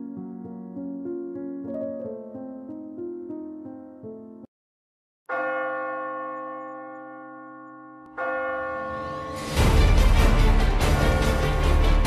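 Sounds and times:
large bell ringing: 0:05.3 - 0:11.8.

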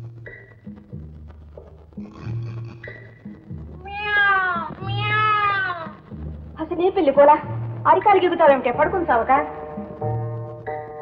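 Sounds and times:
low drum notes: 0:00.0 - 0:10.7
cat meowing loudly: 0:03.8 - 0:06.0.

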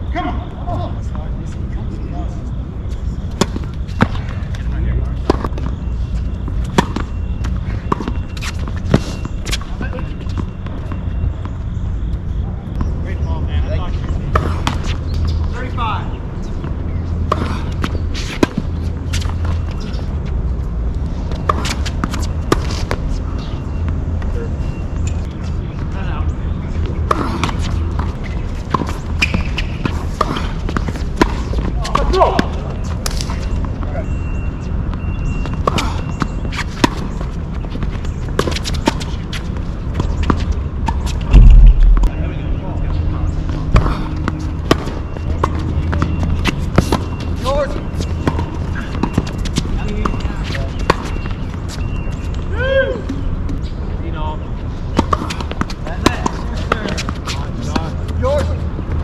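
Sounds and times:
tennis balls struck by rackets: 0:03.1 - 0:13.0, 0:14.0 - 0:15.8, 0:16.4 - 0:20.1, 0:21.3 - 0:24.3, 0:26.7 - 0:34.0, 0:34.9 - 0:52.4, 0:54.9 - 0:58.1
steady low rumble: 0:40.5 - 0:45.8.

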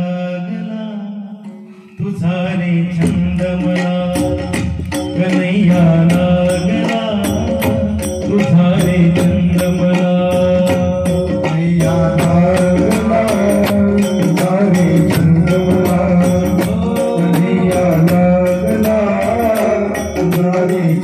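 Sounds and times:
hand drum beat: 0:02.9 - 0:21.0.

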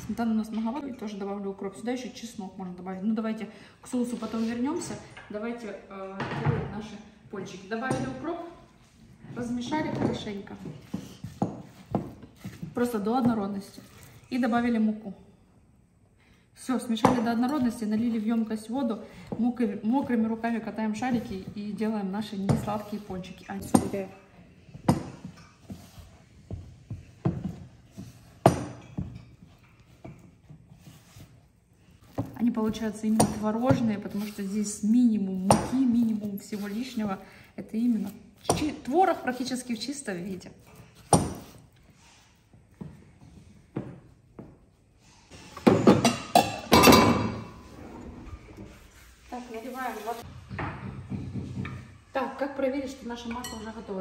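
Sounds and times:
kitchenware clatter: 0:45.5 - 0:47.7, 0:53.2 - 0:54.0.

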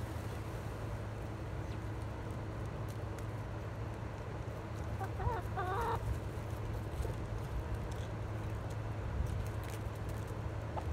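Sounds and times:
chickens clucking: 0:04.8 - 0:06.2.

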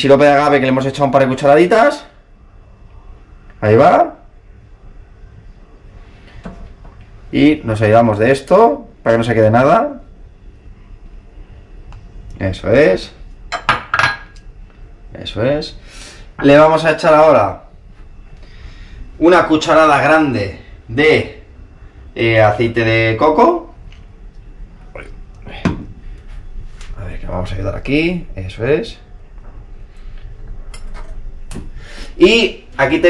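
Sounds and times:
faint low hum: 0:00.0 - 0:33.0.

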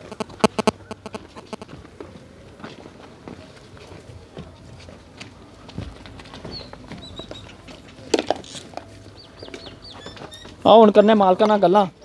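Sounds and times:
scuffs and clicks of movement: 0:00.0 - 0:11.7
small birds chirping: 0:06.4 - 0:07.6, 0:09.0 - 0:12.0.

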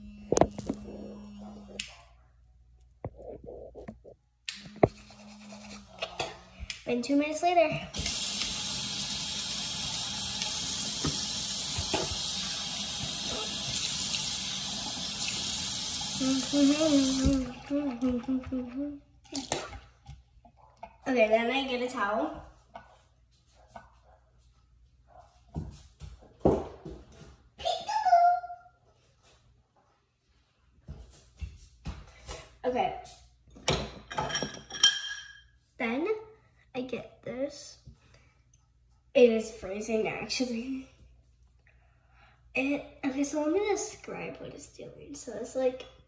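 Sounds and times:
tap running into basin: 0:08.0 - 0:16.2.

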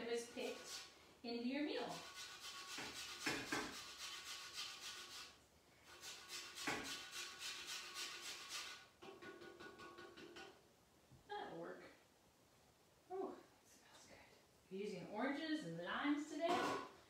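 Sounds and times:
grater rasping citrus peel: 0:00.4 - 0:00.9, 0:01.9 - 0:08.9.

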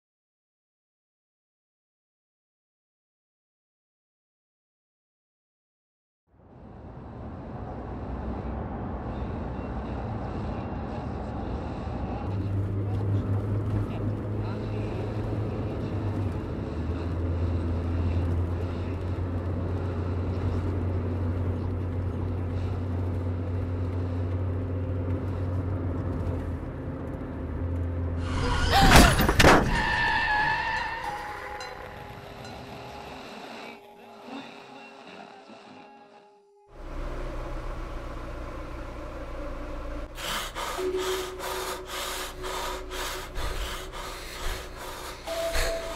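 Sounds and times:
car engine drone: 0:06.3 - 0:34.0, 0:36.7 - 0:45.9.

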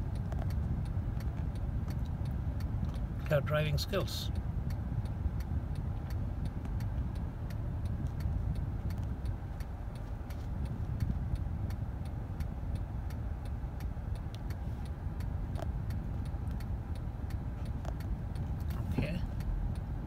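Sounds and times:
low rumble of engine and road: 0:00.0 - 0:20.0
turn signal ticking: 0:00.0 - 0:20.0.

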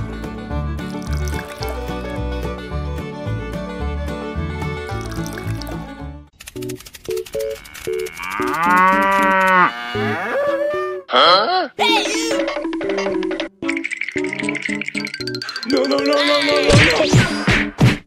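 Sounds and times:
cow mooing: 0:07.6 - 0:11.4.

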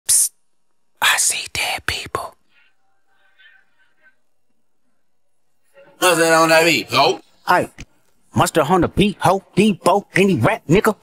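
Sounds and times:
person half-whispering: 0:01.0 - 0:02.7
sharp whispered psst: 0:01.0 - 0:02.8.

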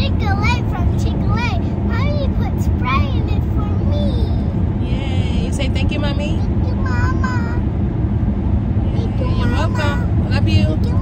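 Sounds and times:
child's high voice: 0:00.0 - 0:04.5, 0:06.4 - 0:07.6, 0:09.0 - 0:10.1
car cabin road rumble: 0:00.0 - 0:11.0.

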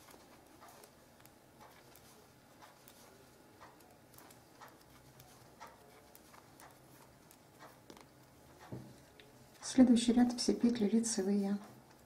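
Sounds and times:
knitting needles clicking: 0:00.0 - 0:12.0.

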